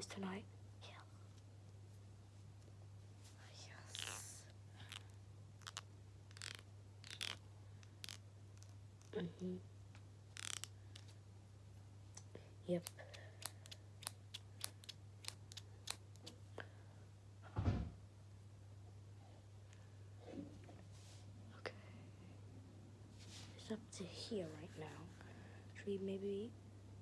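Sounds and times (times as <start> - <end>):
faint whisper: 0.1 - 1.3, 3.3 - 5.1, 21.4 - 22.4.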